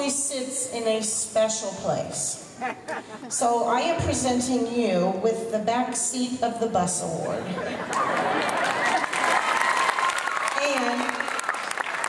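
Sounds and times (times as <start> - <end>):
voices: 0.0 - 8.1
crowd applauding: 7.8 - 12.0.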